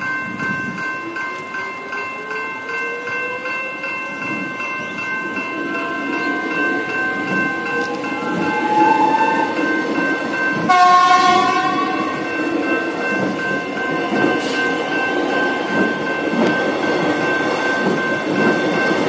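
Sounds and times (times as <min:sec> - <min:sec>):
level crossing warning bells: 0:00.0 - 0:19.0
train horn blast: 0:10.7 - 0:12.2.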